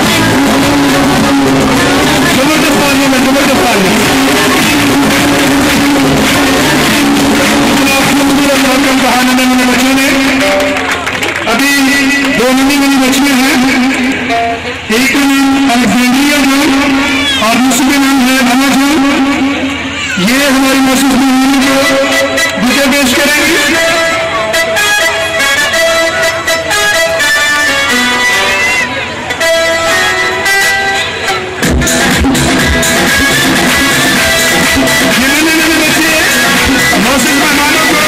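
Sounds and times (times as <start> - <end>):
person singing long notes: 0.0 - 2.9, 3.6 - 8.4
music with held notes: 0.0 - 38.0
low drum beat: 31.6 - 37.2.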